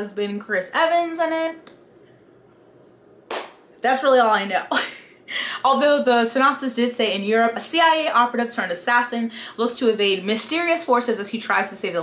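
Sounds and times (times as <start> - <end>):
woman talking: 0.0 - 1.7, 3.8 - 12.0.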